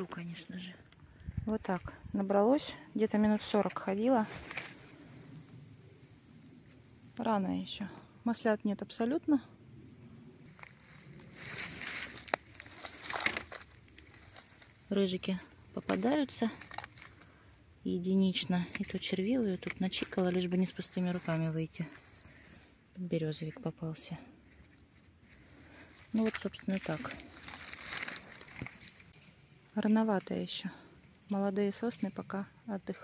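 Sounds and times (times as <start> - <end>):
rustling through dry grass: 4.0 - 5.4, 10.4 - 17.4, 18.8 - 22.8, 24.5 - 29.5
wicker basket rustling: 10.6 - 14.8, 25.7 - 29.1.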